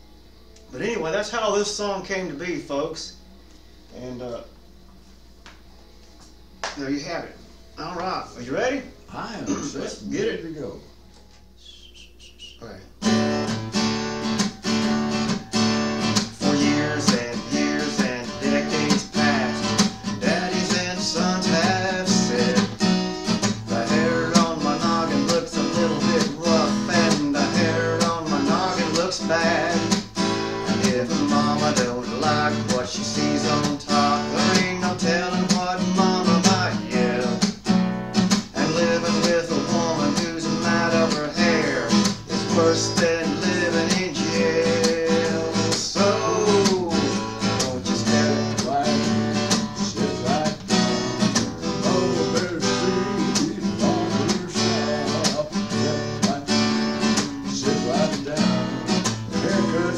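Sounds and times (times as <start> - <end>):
acoustic guitar strumming: 7.5 - 59.9.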